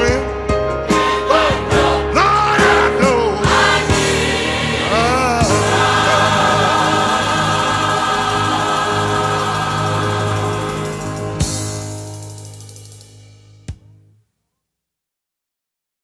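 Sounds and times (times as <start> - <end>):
gospel choir singing: 1.0 - 12.0.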